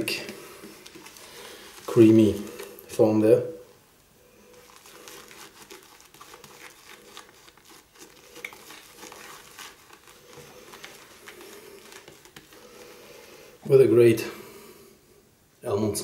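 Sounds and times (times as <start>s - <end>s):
shaving brush whipping lather: 4.6s - 12.7s.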